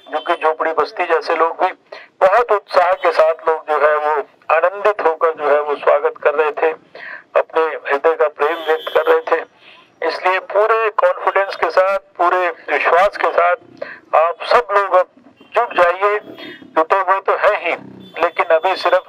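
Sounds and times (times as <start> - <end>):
man giving amplified speech: 0.0 - 19.0.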